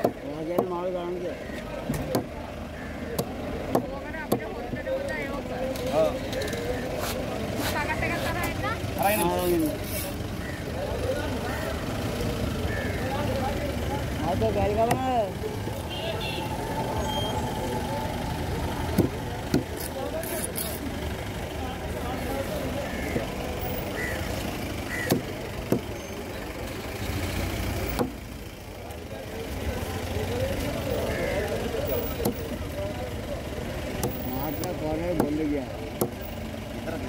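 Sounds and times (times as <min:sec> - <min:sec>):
low engine rumble: 0:00.0 - 0:37.0
voices talking: 0:00.0 - 0:37.0.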